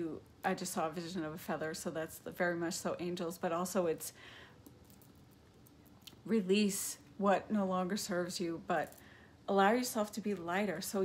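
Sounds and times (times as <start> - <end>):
faint in-breath: 4.1 - 4.6, 9.0 - 9.4.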